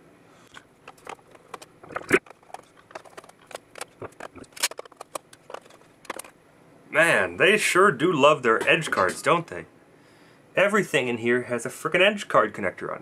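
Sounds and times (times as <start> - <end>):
metallic clicks and knocks: 0.8 - 6.3.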